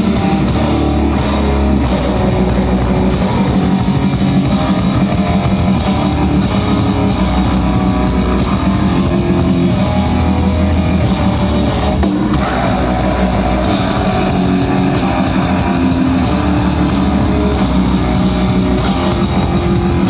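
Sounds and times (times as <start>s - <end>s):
metal band playing live: 0.0s - 20.0s.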